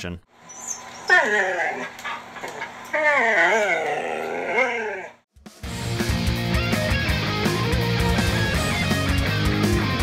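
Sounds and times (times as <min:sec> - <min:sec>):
dog whining howl: 0:00.5 - 0:05.2.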